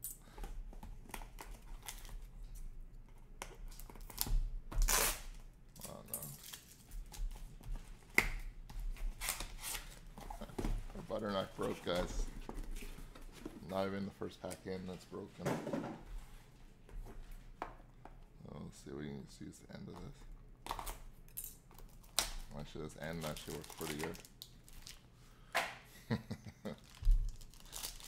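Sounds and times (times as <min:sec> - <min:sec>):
tape and cardboard tearing: 0:03.7 - 0:06.7, 0:09.1 - 0:10.0
plastic packing crinkling: 0:23.0 - 0:25.0, 0:26.8 - 0:28.0.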